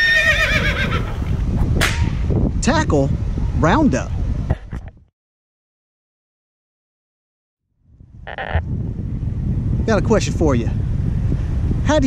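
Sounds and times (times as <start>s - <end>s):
wind rumbling on microphone: 0.0s - 5.1s, 7.8s - 12.0s
short bleat-like voice: 8.3s - 8.6s.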